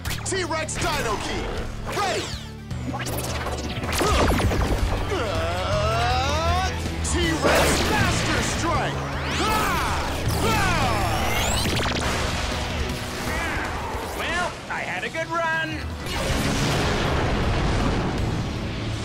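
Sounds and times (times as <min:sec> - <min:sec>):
action score with bass line: 0:00.0 - 0:19.0
fiery blasts: 0:16.1 - 0:19.0.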